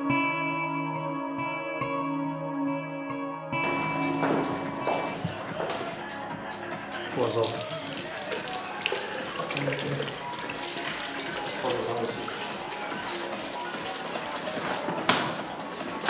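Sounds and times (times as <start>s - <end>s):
background music: 0.0s - 16.0s
tap running into washbasin: 7.2s - 16.0s.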